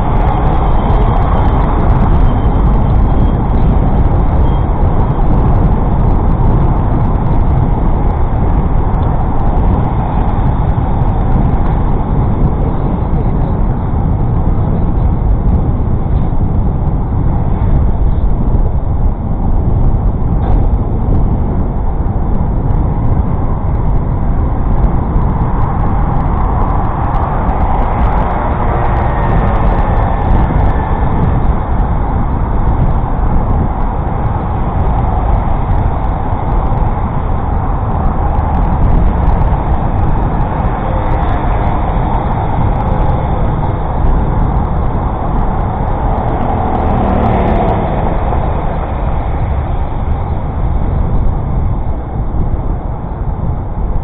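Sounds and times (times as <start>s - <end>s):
wind and road rumble: 0.0s - 54.0s
motor traffic passing: 24.8s - 52.5s.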